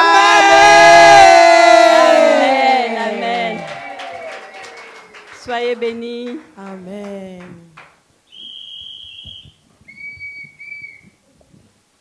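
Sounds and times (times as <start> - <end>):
whistling tones: 8.3 - 11.2.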